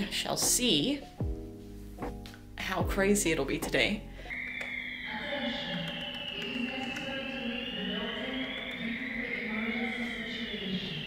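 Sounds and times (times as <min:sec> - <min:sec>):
background music: 0:00.0 - 0:11.0
fire alarm high-pitched tone: 0:04.3 - 0:11.0.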